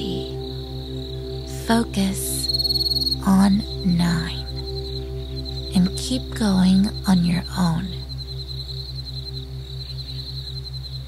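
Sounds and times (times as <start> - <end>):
low pulsing drone: 0.0 - 11.0.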